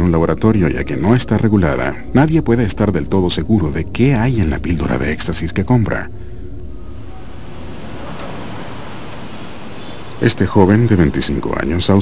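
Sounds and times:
steady rushing noise: 0:04.0 - 0:12.0.

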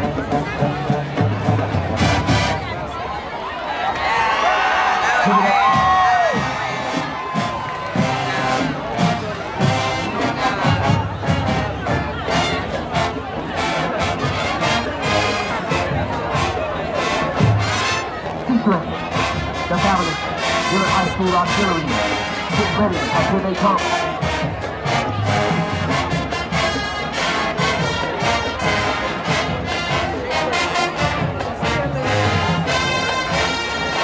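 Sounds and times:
crowd cheering and shouting: 0:00.0 - 0:34.0
marching band brass: 0:00.0 - 0:34.0
steady drum beat: 0:05.5 - 0:34.0.

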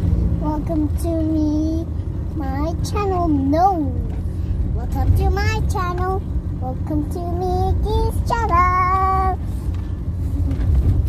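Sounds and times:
low rumble of car cabin: 0:00.0 - 0:11.0
girl singing: 0:00.4 - 0:04.2, 0:04.8 - 0:09.4.

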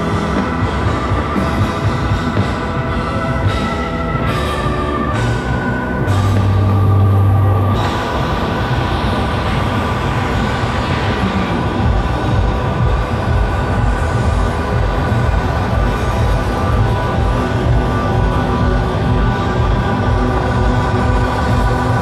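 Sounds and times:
distant live band music: 0:00.0 - 0:22.0.

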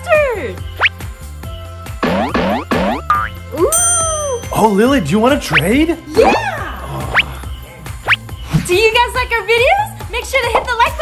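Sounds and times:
background music: 0:00.0 - 0:11.0
cartoon boing effects: 0:02.0 - 0:04.4.

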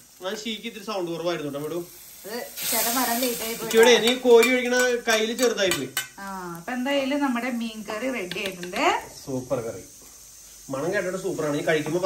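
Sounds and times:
hot oil sizzling in curry: 0:00.0 - 0:12.0.

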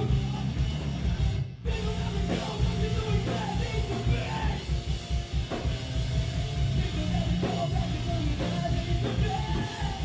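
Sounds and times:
bass guitar: 0:00.0 - 0:10.0
distorted electric guitars: 0:00.0 - 0:10.0
drum kit: 0:00.0 - 0:10.0.

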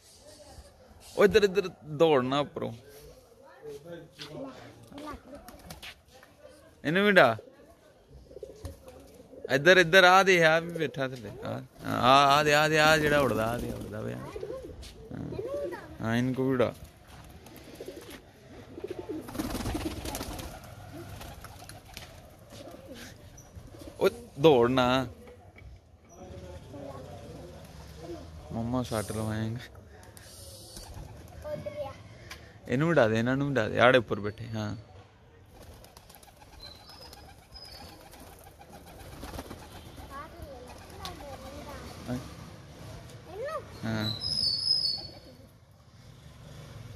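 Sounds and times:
pigeons cooing: 0:17.5 - 0:21.8.

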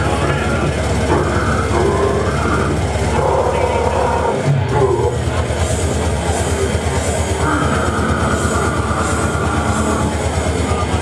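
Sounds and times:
growled vocals: 0:00.0 - 0:05.5, 0:07.4 - 0:11.0
distorted electric guitar: 0:00.0 - 0:11.0
fast drums: 0:00.0 - 0:11.0.

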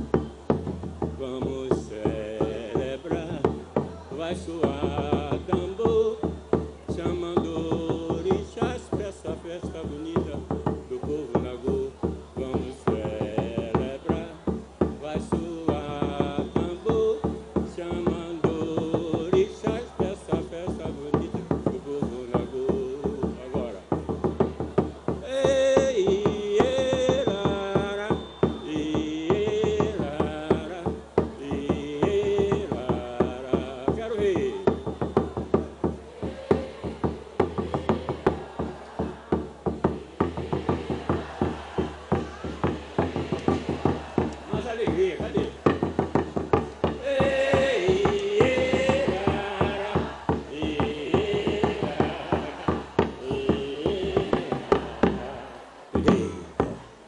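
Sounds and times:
wordless singing: 0:00.0 - 0:24.0, 0:25.1 - 0:56.8
hand drum struck with stick: 0:00.0 - 0:56.9.

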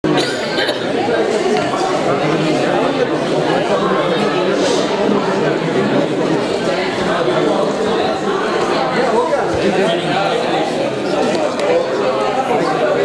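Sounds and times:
hubbub of overlapping voices: 0:00.0 - 0:13.0.

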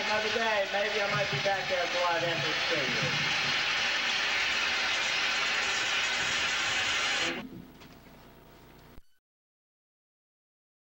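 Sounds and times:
loud rushing hiss: 0:00.0 - 0:07.4.

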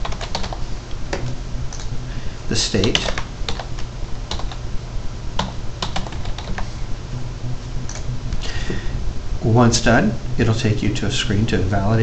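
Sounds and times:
typing on keyboard: 0:00.0 - 0:00.6, 0:02.8 - 0:04.6, 0:05.4 - 0:06.6
steady low hum: 0:00.0 - 0:12.0.

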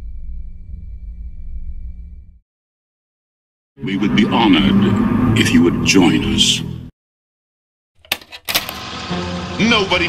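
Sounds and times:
deep rumbling drone: 0:00.0 - 0:02.4, 0:03.8 - 0:06.9.

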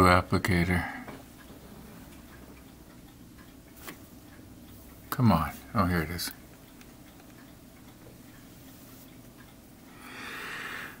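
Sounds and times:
faint ticking: 0:00.0 - 0:11.0.

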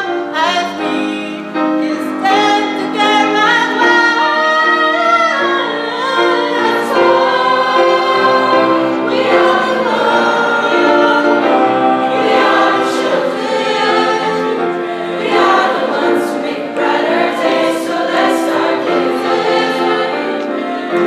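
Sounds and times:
choir singing long chords: 0:00.0 - 0:21.0.

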